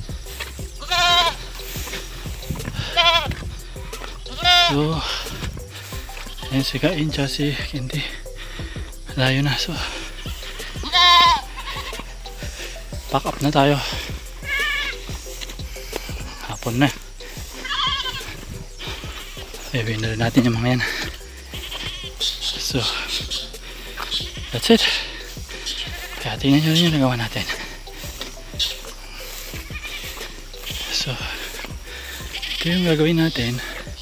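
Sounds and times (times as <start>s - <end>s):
goat bleating: 0.8s - 1.6s, 2.5s - 7.8s, 9.2s - 12.2s, 13.0s - 15.0s, 16.2s - 23.4s, 25.7s - 27.6s, 29.4s - 33.8s.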